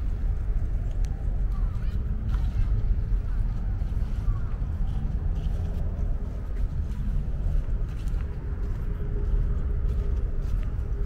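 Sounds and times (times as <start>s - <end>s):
faint distant voices: 0.0s - 11.0s
steady low rumble: 0.0s - 11.0s.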